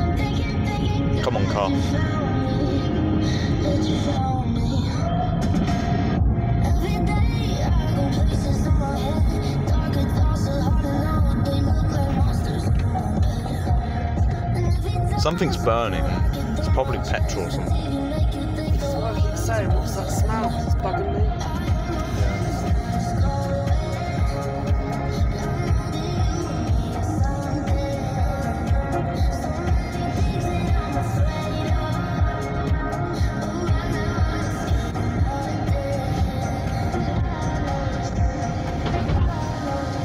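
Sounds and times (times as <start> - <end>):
pop song on car radio: 0.0 - 40.0.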